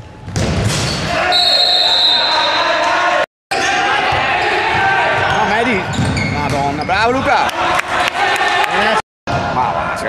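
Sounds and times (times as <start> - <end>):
ball kicked and bouncing: 0.2 - 1.0
players shouting: 1.0 - 10.0.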